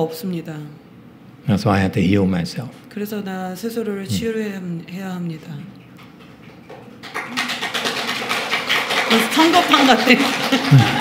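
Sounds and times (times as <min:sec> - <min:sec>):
small audience laughing: 0:10.3 - 0:11.0.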